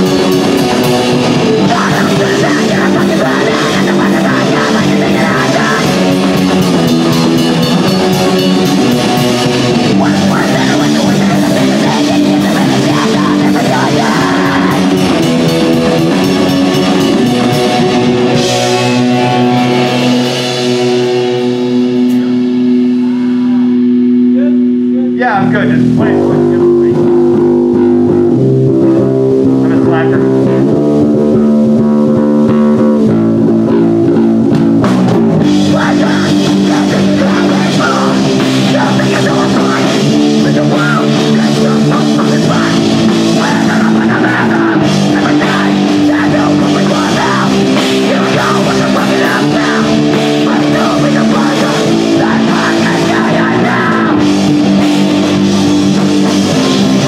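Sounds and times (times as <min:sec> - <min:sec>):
punk band playing: 0:00.0 - 0:57.0.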